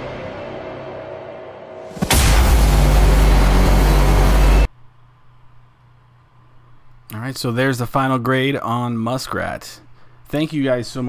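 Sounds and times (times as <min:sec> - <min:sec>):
explosion sound effect: 0:00.0 - 0:04.7.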